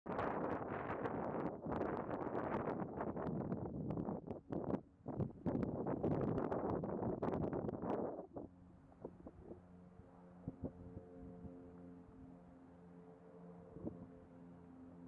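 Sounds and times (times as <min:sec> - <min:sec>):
wind buffeting microphone: 0:00.1 - 0:09.6.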